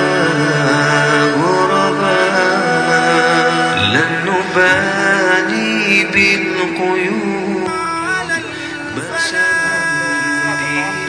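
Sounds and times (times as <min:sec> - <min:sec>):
man singing chant-like melody: 0:00.0 - 0:11.0.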